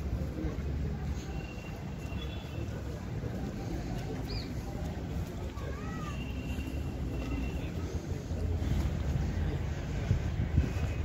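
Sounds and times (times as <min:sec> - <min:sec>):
wind rumble on microphone: 0:08.6 - 0:11.0.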